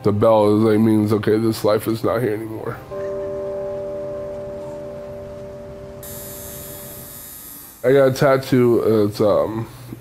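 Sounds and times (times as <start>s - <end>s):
bell ringing: 2.8s - 7.2s.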